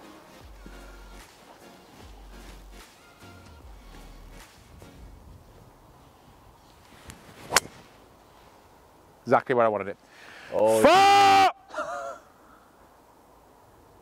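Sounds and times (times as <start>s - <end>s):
faint background music: 0.0s - 6.1s.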